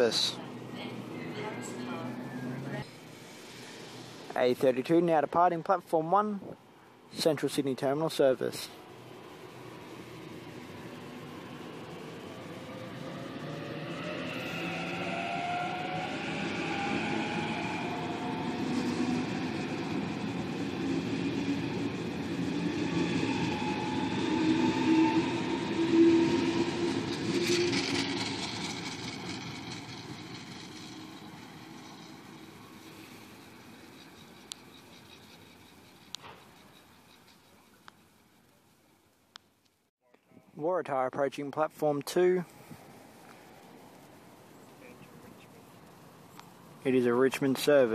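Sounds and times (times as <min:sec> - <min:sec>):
traction motors whining: 0:00.0 - 0:04.3, 0:08.5 - 0:38.2
electric train accelerating: 0:00.0 - 0:05.2, 0:07.2 - 0:38.5.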